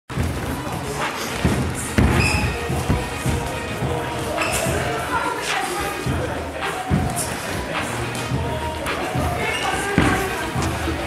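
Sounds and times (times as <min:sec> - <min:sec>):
music with steady bass beat: 0:00.1 - 0:11.0.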